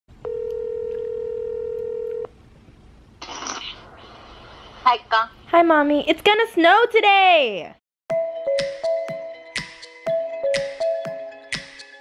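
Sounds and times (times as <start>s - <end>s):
telephone ringback tone: 0.2s - 2.3s.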